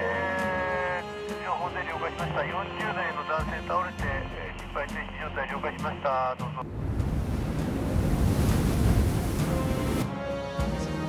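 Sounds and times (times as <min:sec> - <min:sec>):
strong wind in blizzard: 0:06.6 - 0:10.0
wind gusts buffeting microphone: 0:06.6 - 0:10.0.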